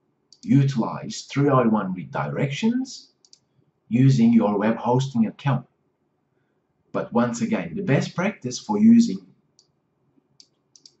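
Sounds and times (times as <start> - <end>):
faint computer mouse clicks: 3.2 - 3.5, 9.6 - 9.8, 10.4 - 11.0.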